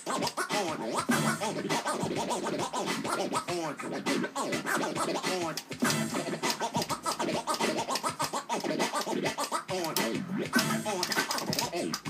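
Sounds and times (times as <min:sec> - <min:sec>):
vinyl record scratching: 0:00.0 - 0:12.0.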